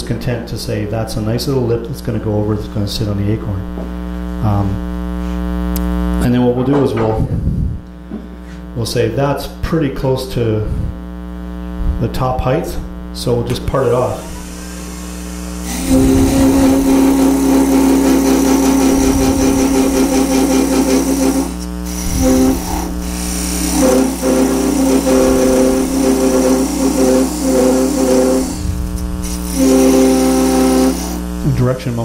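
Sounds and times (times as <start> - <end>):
lathe hum: 13.8 - 32.0
parting tool whine on lathe: 13.8 - 32.0.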